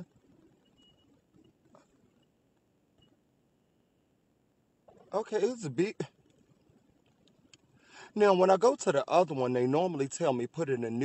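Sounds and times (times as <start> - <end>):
faint ticks: 6.2 - 7.8.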